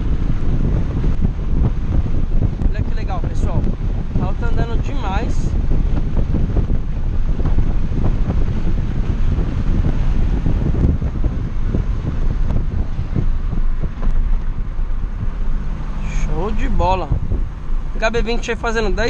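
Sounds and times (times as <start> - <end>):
road and wind noise in car cabin: 0.0 - 19.0.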